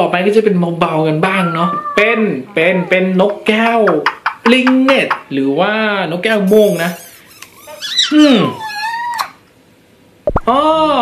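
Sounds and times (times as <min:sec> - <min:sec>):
high wavering meow-like call: 0:01.3 - 0:02.2, 0:07.6 - 0:09.4.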